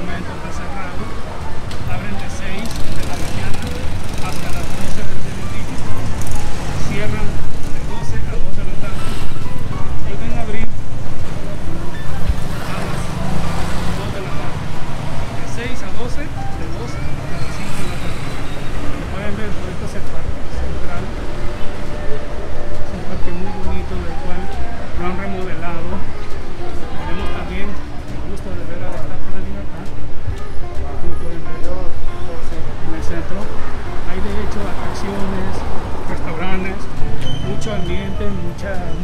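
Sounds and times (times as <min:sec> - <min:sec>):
music playing: 0:00.0 - 0:39.0
traffic running: 0:00.0 - 0:39.0
people talking: 0:01.9 - 0:05.8, 0:06.8 - 0:09.0, 0:19.0 - 0:21.2, 0:22.8 - 0:26.1, 0:26.8 - 0:33.5, 0:34.1 - 0:39.0.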